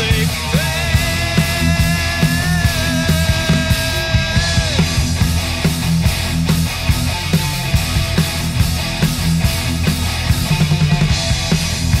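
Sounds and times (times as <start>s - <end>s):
bass chords: 0.0s - 12.0s
distorted electric guitar: 0.0s - 12.0s
drums with steady beat: 0.0s - 12.0s.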